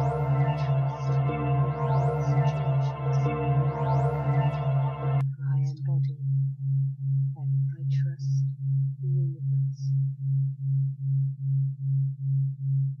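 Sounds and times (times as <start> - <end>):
low pulsing sine tone: 0.0 - 13.0
faint whispering: 5.2 - 6.1, 7.4 - 9.9.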